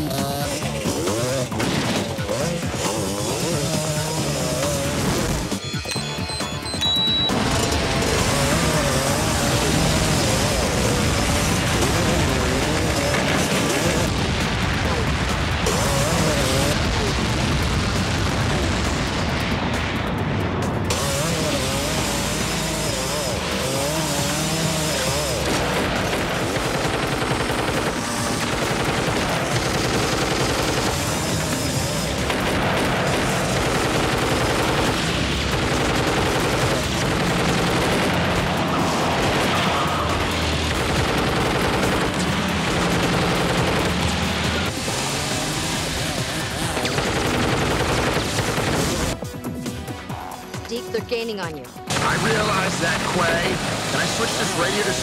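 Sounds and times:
film music score: 0.0s - 55.0s
motorcycle engine: 0.0s - 55.0s
gunfire bursts: 0.1s - 5.8s, 7.3s - 18.9s, 20.9s - 49.3s, 51.9s - 55.0s
explosions: 7.3s - 21.7s.

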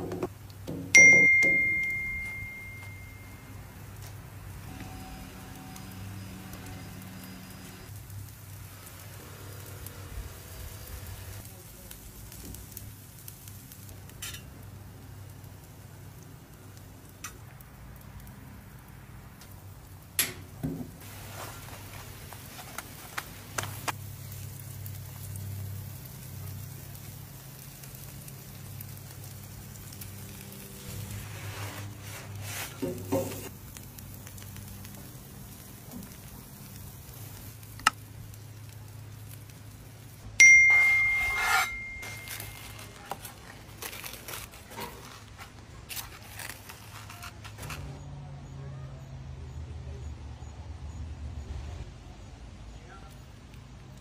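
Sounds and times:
food sizzling on griddle: 3.7s - 45.2s.

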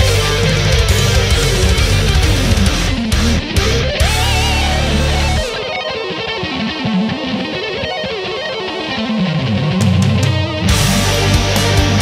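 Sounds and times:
lead guitar melody: 0.0s - 12.0s
metal band playing: 0.0s - 12.0s.

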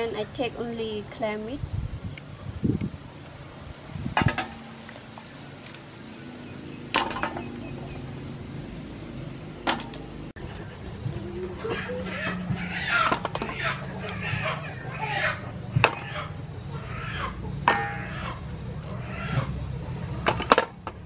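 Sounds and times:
bird calls: 6.0s - 19.8s.

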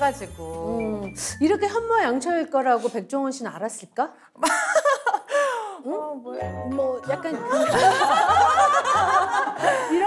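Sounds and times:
people laughing together: 4.4s - 5.3s, 7.3s - 10.0s.

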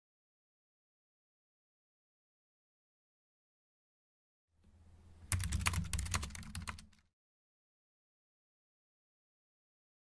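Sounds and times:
computer keyboard typing: 5.3s - 7.1s.

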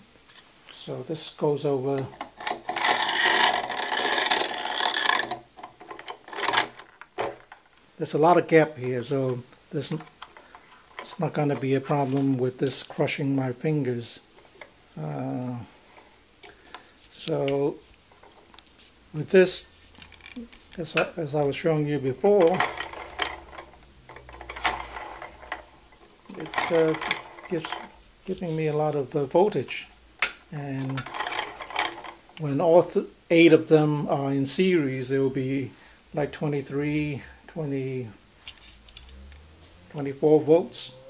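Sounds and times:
rotor clicking and rattling: 2.0s - 7.7s.

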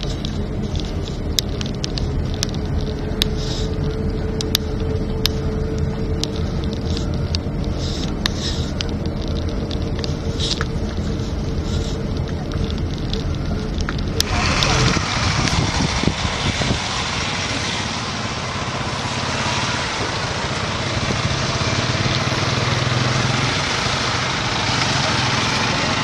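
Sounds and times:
engine running steadily: 0.0s - 26.0s.

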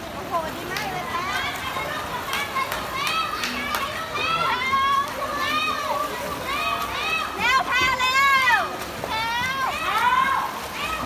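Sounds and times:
children shouting and cheering: 1.1s - 11.0s.

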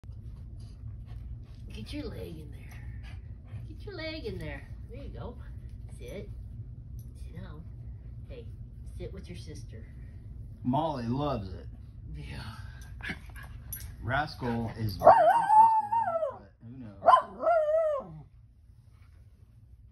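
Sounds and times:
low steady rumble: 0.0s - 19.9s
dog whining barks: 15.0s - 16.4s, 17.0s - 18.2s.

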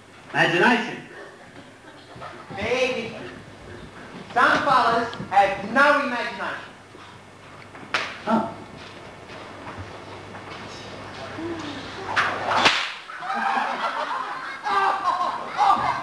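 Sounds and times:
whip cracking: 12.2s - 13.1s.

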